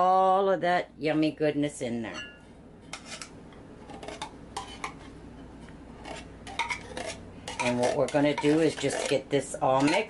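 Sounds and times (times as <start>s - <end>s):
metal spoon scraping tin can: 2.9s - 5.0s, 6.0s - 10.0s.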